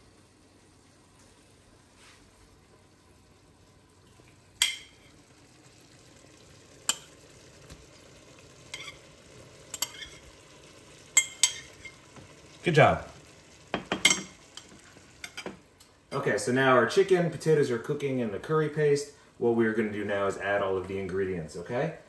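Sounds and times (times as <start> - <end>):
faint steady sizzle: 0.0 - 22.0.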